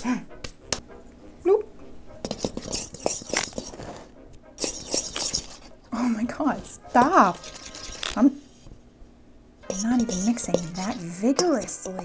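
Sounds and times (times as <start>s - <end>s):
utensil scraping metal bowl: 2.2s - 8.4s, 9.6s - 12.0s.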